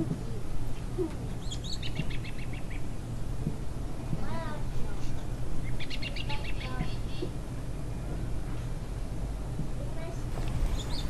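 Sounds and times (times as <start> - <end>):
bird chirping: 1.4 - 2.9, 5.6 - 6.8, 10.6 - 11.0.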